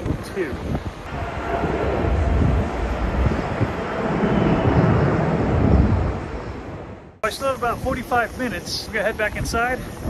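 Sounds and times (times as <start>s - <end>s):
jet airliner taking off: 1.1s - 8.4s.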